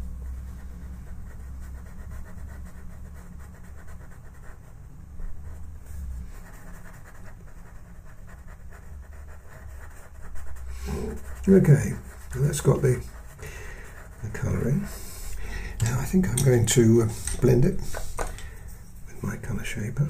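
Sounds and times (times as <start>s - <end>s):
pencil scratching on paper: 0.0s - 19.0s
steady low hum: 0.0s - 20.0s.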